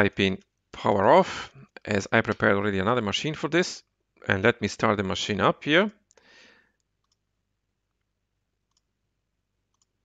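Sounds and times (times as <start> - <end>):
computer mouse clicks: 6.8 - 7.3, 8.7 - 8.9, 9.7 - 10.0.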